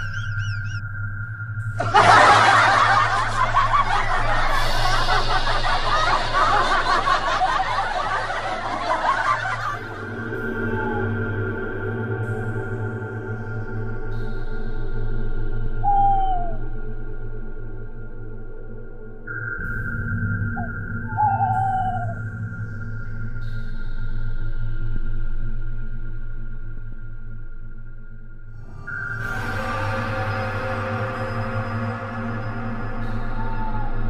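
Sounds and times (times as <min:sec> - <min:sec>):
eerie ambient music drone: 0:00.0 - 0:34.0
canned laughter: 0:01.8 - 0:10.0
steady high tone: 0:01.8 - 0:11.2.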